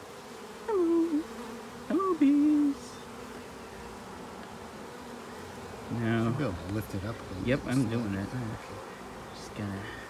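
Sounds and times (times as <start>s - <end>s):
honey bees buzzing: 0.0s - 10.0s.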